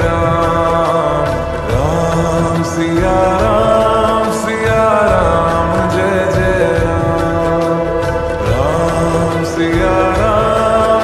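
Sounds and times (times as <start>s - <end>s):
devotional singing: 0.0s - 11.0s
instrumental backing: 0.0s - 11.0s.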